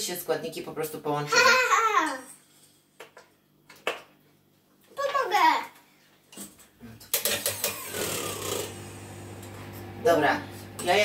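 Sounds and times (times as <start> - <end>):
electric hand mixer whisking: 7.2 - 11.0.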